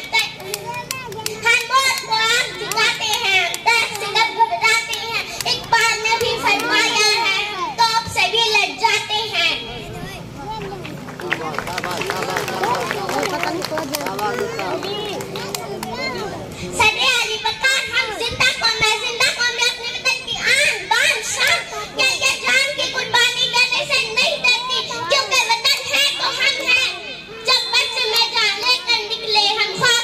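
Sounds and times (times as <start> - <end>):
girl speaking into a microphone: 0.0 - 11.0, 13.3 - 30.0
children chattering: 0.0 - 30.0.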